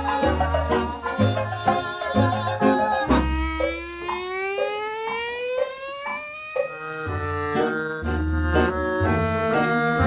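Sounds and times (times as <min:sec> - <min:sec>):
dance band chords: 0:00.0 - 0:04.8, 0:05.6 - 0:10.0
instrument note sliding upward: 0:03.1 - 0:10.0.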